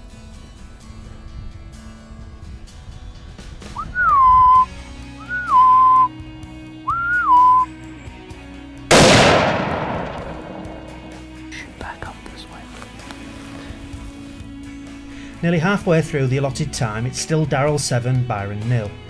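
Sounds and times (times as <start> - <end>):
loud whistles: 3.8 - 6.1, 6.9 - 7.7
rifle shot: 8.9 - 11.4.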